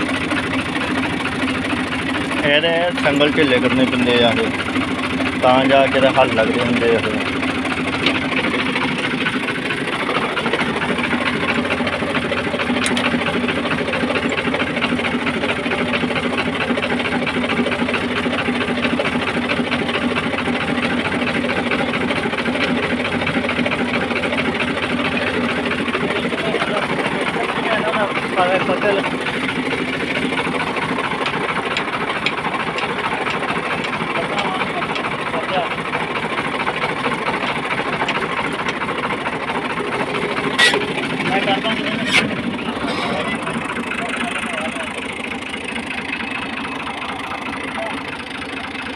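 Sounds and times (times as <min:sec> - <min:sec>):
diesel tractor engine idling: 0:00.0 - 0:48.9.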